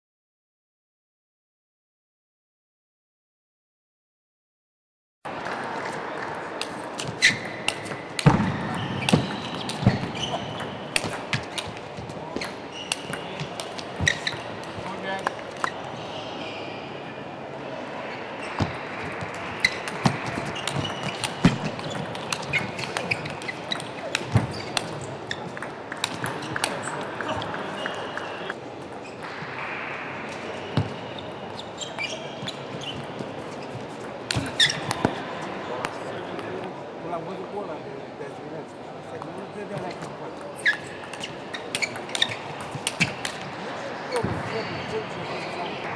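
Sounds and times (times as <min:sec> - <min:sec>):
murmur of hall noise: 0:05.3 - 0:45.9
ball bouncing on table: 0:07.0 - 0:15.7, 0:18.6 - 0:28.0.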